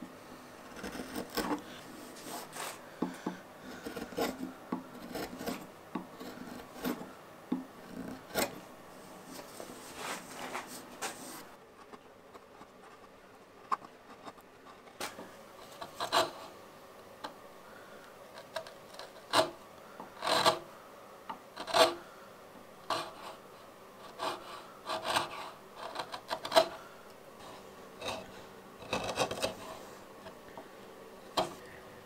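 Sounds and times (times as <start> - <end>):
chisel scraping wood: 0.6 - 8.6, 9.3 - 16.6, 18.3 - 20.7, 21.4 - 22.0, 22.8 - 31.7.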